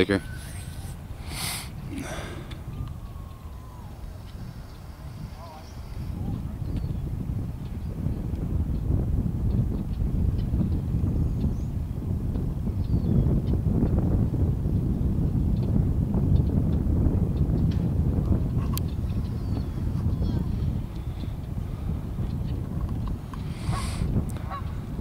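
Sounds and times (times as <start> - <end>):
wind buffeting microphone: 0.0 - 25.0
faint ticks: 18.6 - 19.4.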